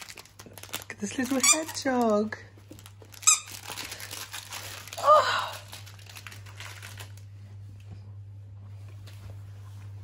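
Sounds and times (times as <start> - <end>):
plush toy rustling and crinkling: 0.0 - 7.8
steady low hum: 2.1 - 10.0.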